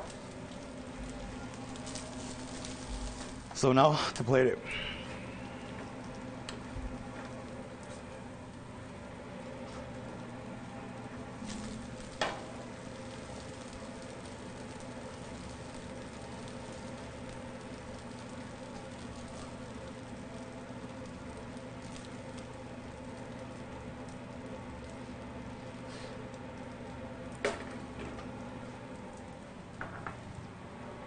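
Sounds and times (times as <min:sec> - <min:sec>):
faint sizzling: 0:00.0 - 0:31.0
kitchen hum: 0:00.0 - 0:31.0.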